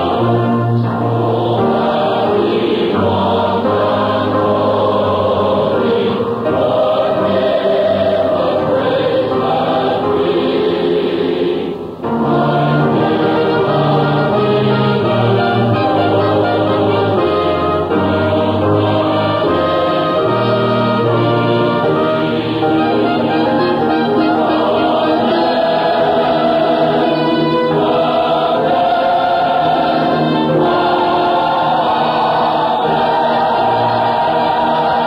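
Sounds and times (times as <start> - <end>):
church choir singing chords: 0.0 - 35.0.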